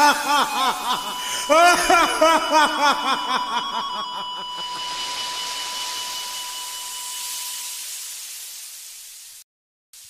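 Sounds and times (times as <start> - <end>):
thin whistle-like tone: 0.0 - 8.3
recording hiss: 0.0 - 9.4.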